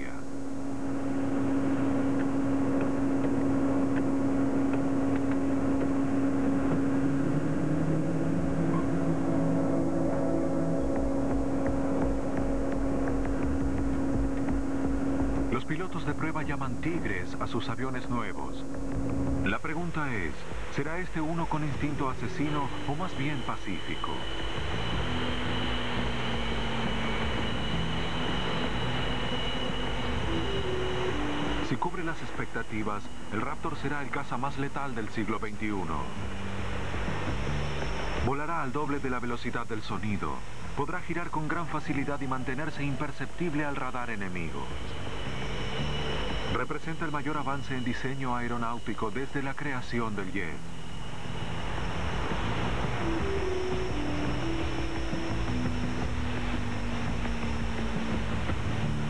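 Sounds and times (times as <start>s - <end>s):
jet engines whining: 0.0s - 59.0s
lower tone: 0.0s - 59.0s
mechanical hum: 0.0s - 59.0s
deep rumble: 0.3s - 32.1s, 50.6s - 59.0s.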